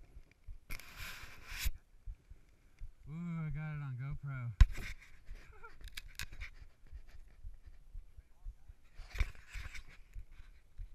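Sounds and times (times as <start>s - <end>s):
bumps and rumble on microphone: 0.0s - 10.9s.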